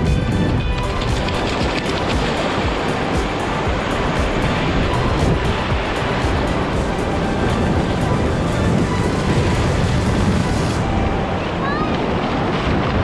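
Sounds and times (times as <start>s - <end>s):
background music: 0.0s - 13.0s
surf washing over sand: 0.0s - 13.0s.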